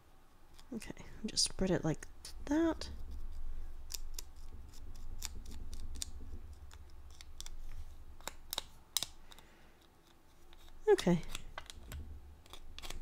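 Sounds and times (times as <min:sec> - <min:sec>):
palette knife scraping paste: 0:12.4 - 0:13.0.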